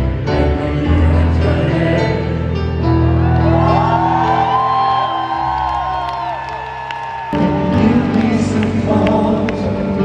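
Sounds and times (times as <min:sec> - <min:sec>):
live band music in arena: 0:00.0 - 0:10.0
crowd whooping: 0:03.1 - 0:07.6.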